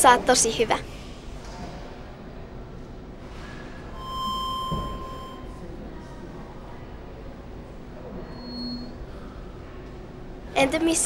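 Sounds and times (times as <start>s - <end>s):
electronic beep tone: 4.0s - 5.6s.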